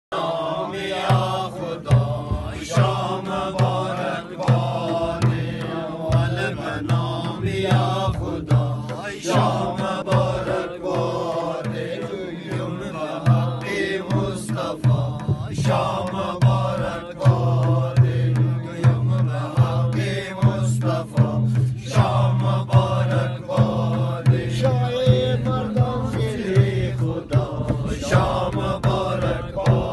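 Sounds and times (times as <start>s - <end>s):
frame drum beats: 0.1s - 29.9s
men singing in unison: 0.1s - 29.9s.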